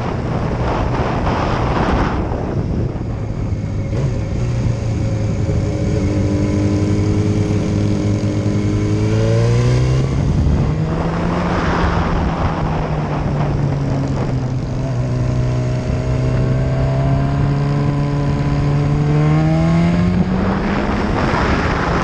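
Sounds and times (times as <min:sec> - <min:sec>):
motorcycle engine revving: 0:00.0 - 0:22.0
rush of noise: 0:00.0 - 0:22.0.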